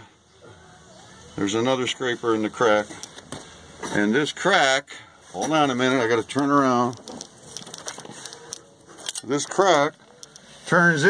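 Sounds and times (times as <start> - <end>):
phone being handled: 6.4 - 10.6.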